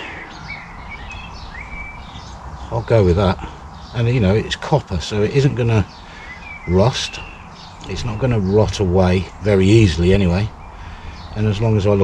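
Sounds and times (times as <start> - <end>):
outdoor background noise: 0.0 - 12.0
small birds chirping: 0.0 - 12.0.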